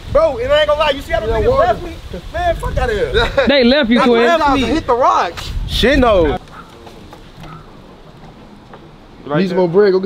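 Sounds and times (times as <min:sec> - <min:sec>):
low hiss of light wind: 0:00.0 - 0:10.0.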